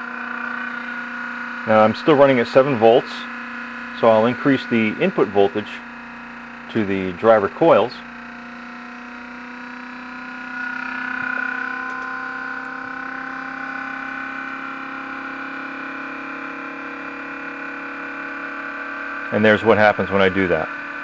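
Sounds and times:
magnet motor humming: 0:00.0 - 0:21.0.

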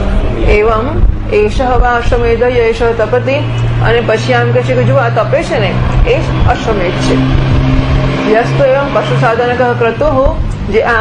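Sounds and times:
low hum: 0:00.0 - 0:11.0
woman speaking: 0:00.4 - 0:07.5, 0:08.2 - 0:11.0.

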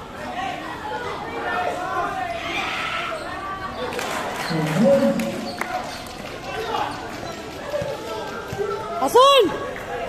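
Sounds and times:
voices of players and spectators: 0:00.0 - 0:10.0.

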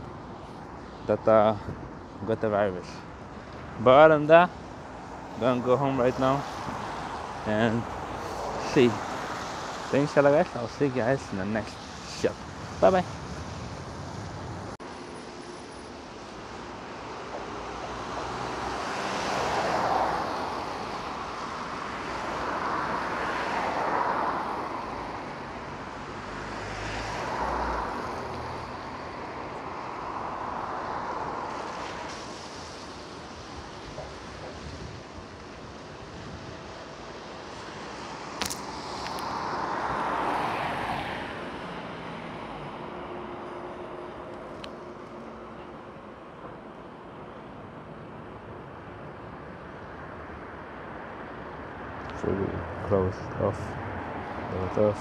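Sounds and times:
cars passing on a wet road: 0:00.0 - 0:55.0.

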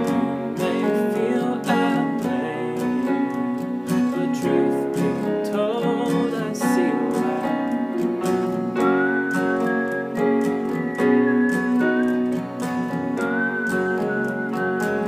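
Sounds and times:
man singing: 0:00.0 - 0:08.0
acoustic guitar strumming: 0:00.0 - 0:15.0
high wavering melody line: 0:08.7 - 0:15.0.

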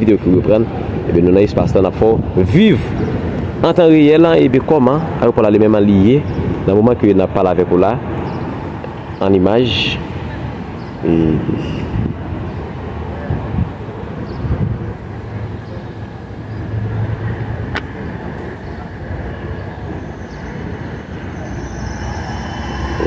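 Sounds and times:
traffic rumble: 0:00.0 - 0:23.0.

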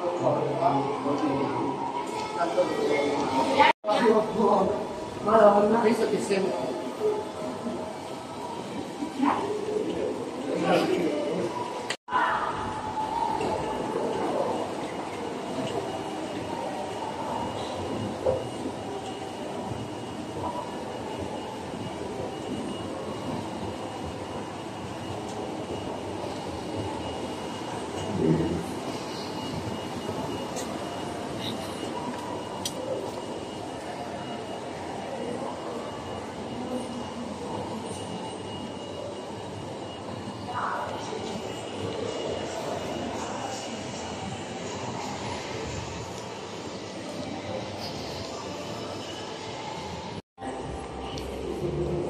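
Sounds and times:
faint murmur of distant activity: 0:00.0 - 0:52.0
thin high whine: 0:00.0 - 0:52.0.

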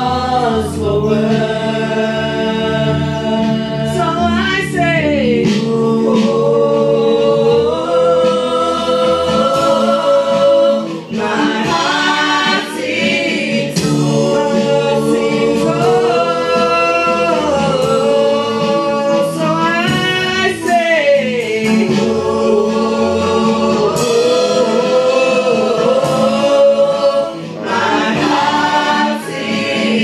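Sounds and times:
group singing praise song: 0:00.0 - 0:30.0
instrumental accompaniment: 0:00.0 - 0:30.0.

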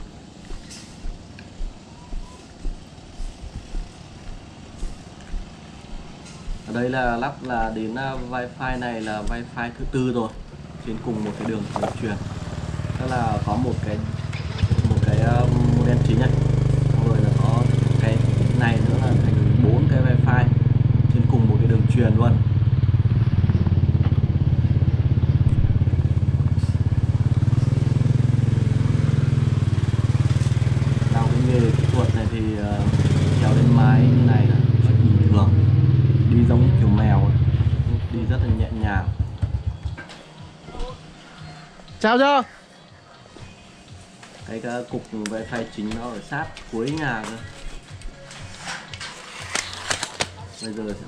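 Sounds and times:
person talking: 0:06.7 - 0:12.3
motorbike engine running: 0:09.3 - 0:40.0.

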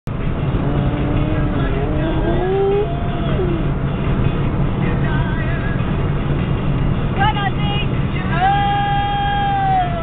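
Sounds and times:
car road noise rumble: 0:00.1 - 0:10.0
dog howling: 0:01.0 - 0:03.8.

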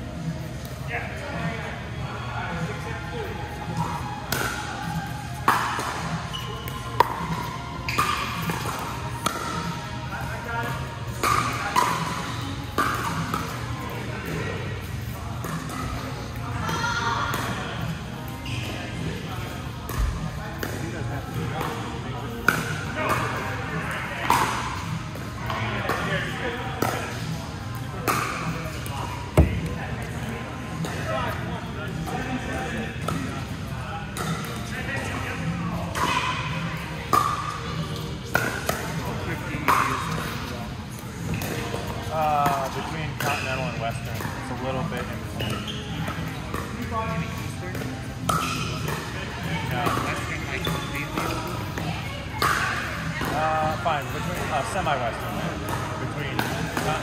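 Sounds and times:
paddles striking plastic ball: 0:29.4 - 0:29.8
ball bouncing on court: 0:29.4 - 0:30.1, 0:49.8 - 0:53.4.

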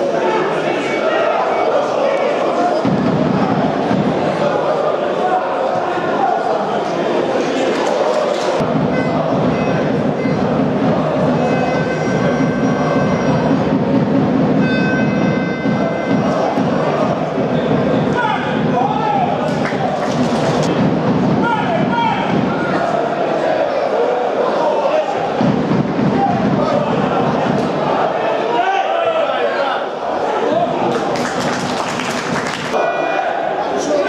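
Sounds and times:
crowd shouting and chanting: 0:00.0 - 0:34.0.

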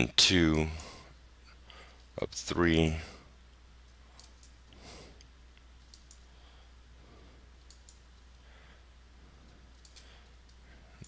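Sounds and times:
low steady hum: 0:00.0 - 0:11.0
computer mouse clicks: 0:04.2 - 0:04.6, 0:05.2 - 0:06.3, 0:07.6 - 0:08.0, 0:09.5 - 0:10.6.

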